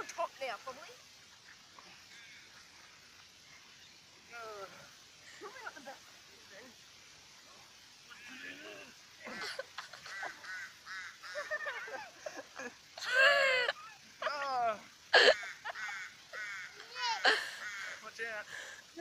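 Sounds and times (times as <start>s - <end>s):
people laughing and calling out: 7.7s - 19.0s.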